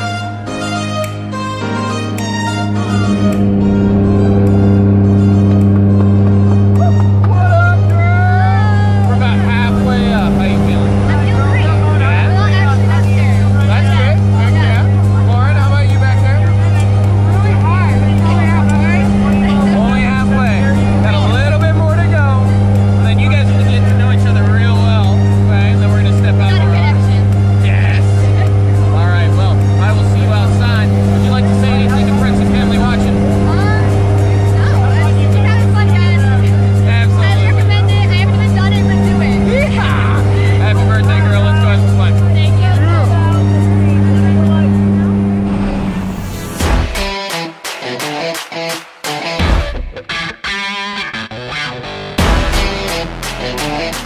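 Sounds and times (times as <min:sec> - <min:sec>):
propeller plane engine drone: 0:00.0 - 0:47.1.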